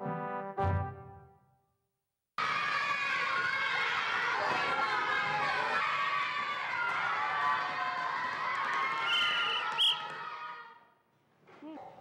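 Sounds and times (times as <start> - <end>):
whistle blasts: 9.0 - 10.2.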